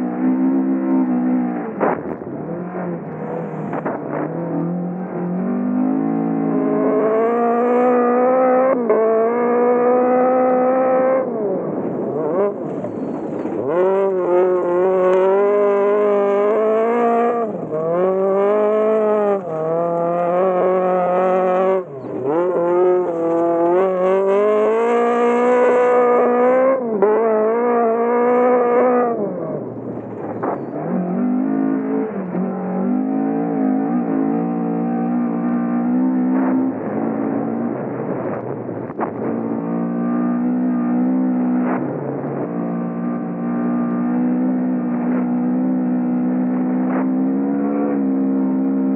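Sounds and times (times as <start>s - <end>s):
rally car engine revving: 0.0s - 48.9s.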